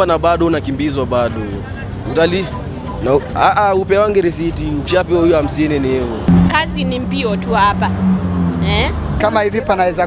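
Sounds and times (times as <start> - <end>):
people speaking: 0.0 - 7.9, 8.6 - 10.0
city traffic: 0.0 - 10.0.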